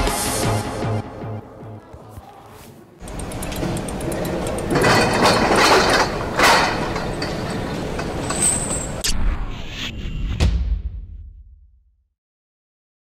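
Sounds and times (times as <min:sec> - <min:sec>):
machinery ticking and grinding: 0:03.0 - 0:09.0.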